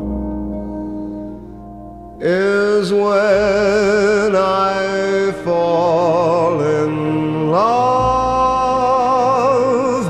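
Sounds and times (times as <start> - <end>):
slow orchestral ballad music: 0.0 - 10.0.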